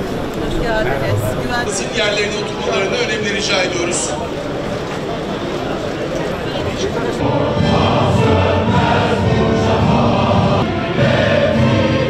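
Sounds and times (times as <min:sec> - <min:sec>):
choir singing: 0:07.0 - 0:12.0.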